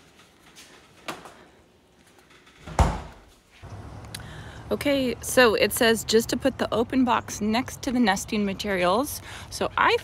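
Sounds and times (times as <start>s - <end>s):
refrigerator door shutting: 2.6s - 3.2s.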